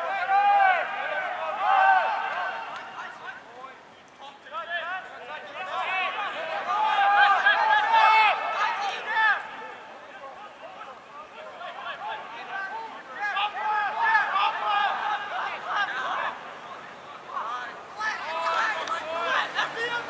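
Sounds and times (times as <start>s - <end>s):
players shouting short calls: 0.0s - 20.0s.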